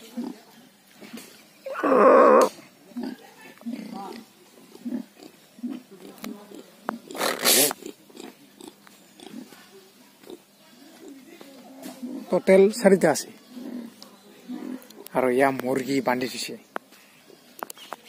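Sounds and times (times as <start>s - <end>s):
pigs grunting: 1.0s - 9.6s, 11.8s - 12.4s, 13.4s - 15.1s
pig squealing: 1.7s - 2.5s.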